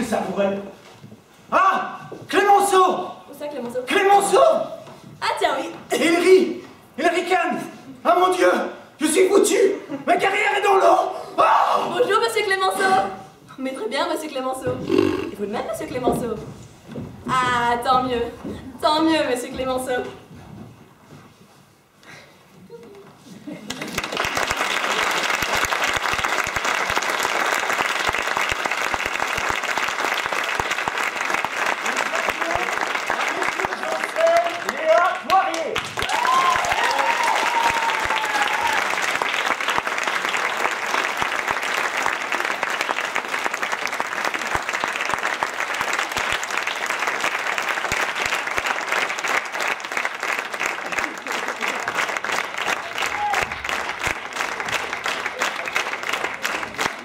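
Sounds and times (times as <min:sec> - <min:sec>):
audience applauding: 0:23.6 - 0:57.0.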